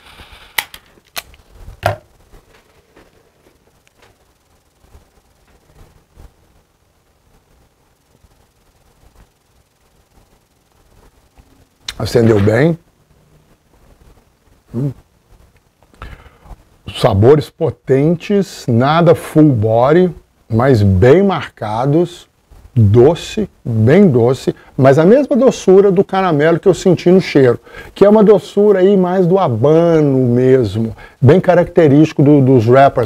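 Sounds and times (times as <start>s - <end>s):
breath noises: 15.9s - 16.7s, 27.6s - 28.0s, 30.9s - 31.2s.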